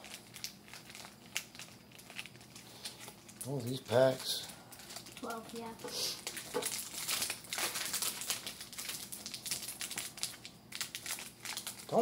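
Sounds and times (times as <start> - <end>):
card pack wrappers crinkling: 0.0 - 12.0.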